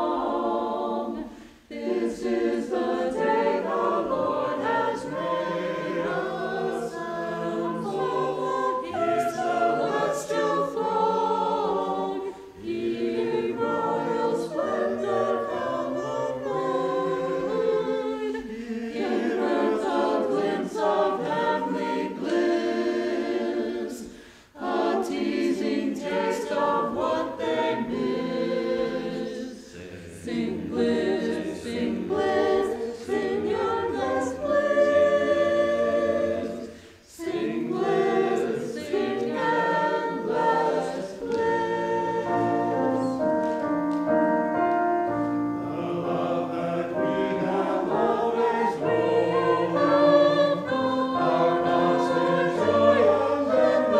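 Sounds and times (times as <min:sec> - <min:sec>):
church choir singing: 0:00.0 - 0:53.9.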